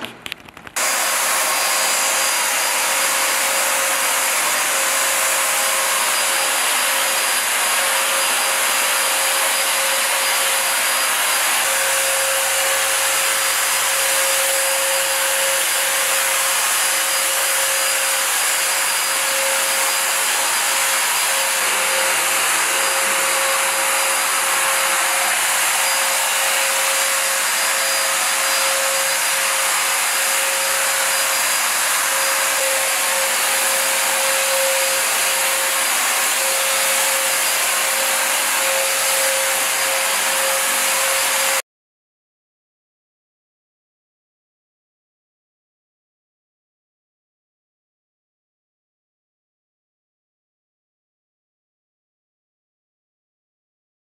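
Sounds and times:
fogger blower whirring: 0.0 - 41.6.

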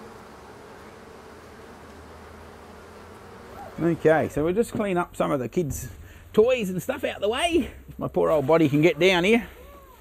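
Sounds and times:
bee swarm buzzing: 0.0 - 7.5.

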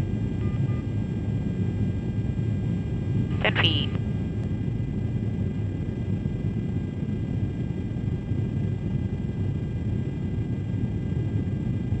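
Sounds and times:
low rumble of air and engine: 0.0 - 12.0.

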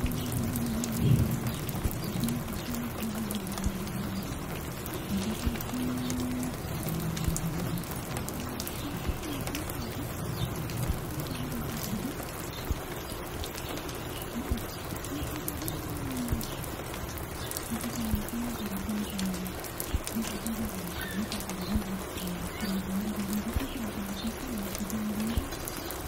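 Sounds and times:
rain pattering: 0.0 - 26.0
small drips and clicks: 0.0 - 26.0.

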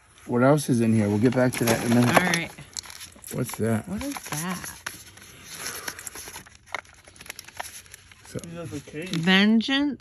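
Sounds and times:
box clicks and rustles: 0.9 - 9.3.

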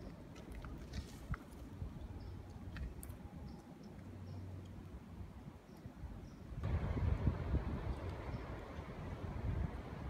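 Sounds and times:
wind buffeting microphone: 6.0 - 10.0.

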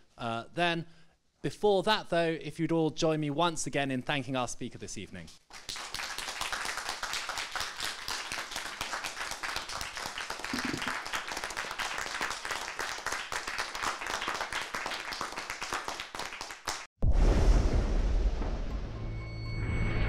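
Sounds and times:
audience applauding: 5.5 - 16.9.

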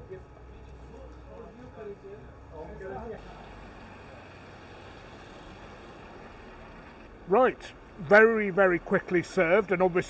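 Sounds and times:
hiss: 3.2 - 6.9.

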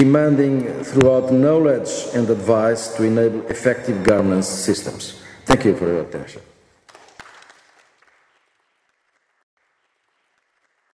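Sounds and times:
audience applause: 6.9 - 11.0.

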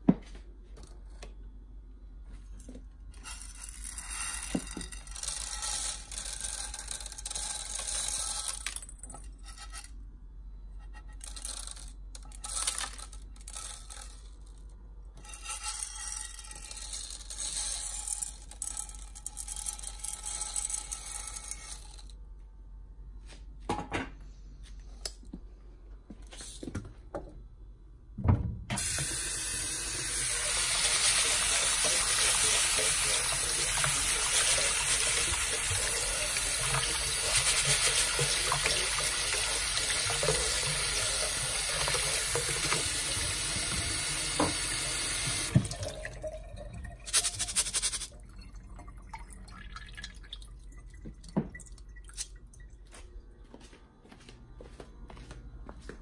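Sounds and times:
tap running water: 28.7 - 51.8.

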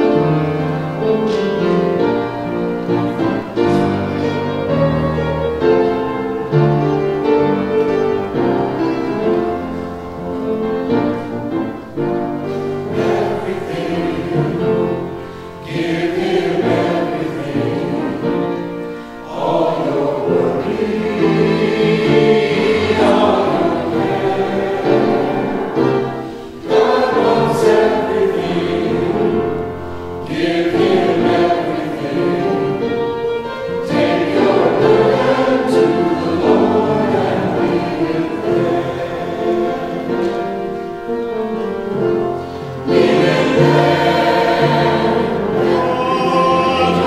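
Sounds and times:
choir singing sacred piece: 0.0 - 47.0.

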